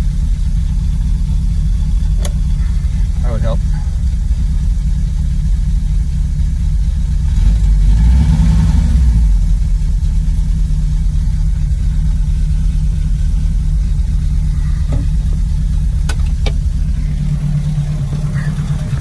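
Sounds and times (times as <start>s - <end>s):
van engine idling: 0.0s - 19.0s.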